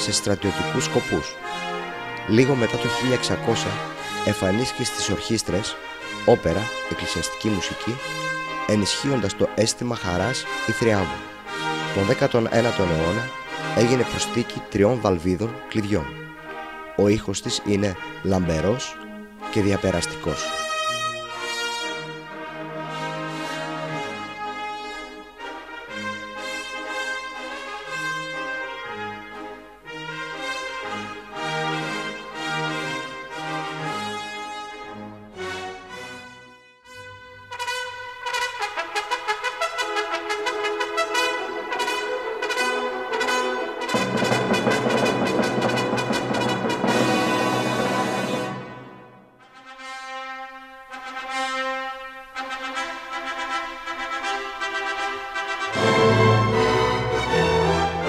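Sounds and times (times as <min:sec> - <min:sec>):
trumpet playing: 0:00.0 - 0:58.0
low bass notes: 0:55.7 - 0:58.0.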